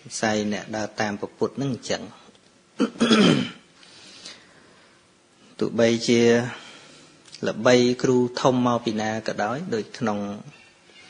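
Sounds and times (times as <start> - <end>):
man clearing his throat: 2.8 - 3.7.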